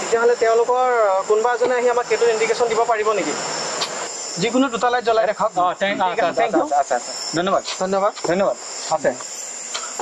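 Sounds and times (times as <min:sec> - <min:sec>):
people talking: 0:00.0 - 0:03.4
crickets chirring: 0:00.0 - 0:10.0.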